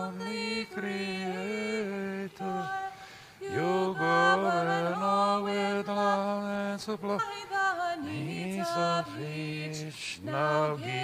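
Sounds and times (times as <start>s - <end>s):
person chanting: 8.0s - 11.0s.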